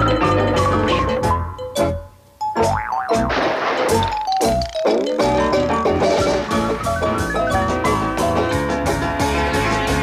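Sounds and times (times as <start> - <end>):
cartoon music: 0.0 - 3.4, 4.0 - 8.4
wobbling boing sound effect: 2.6 - 5.3.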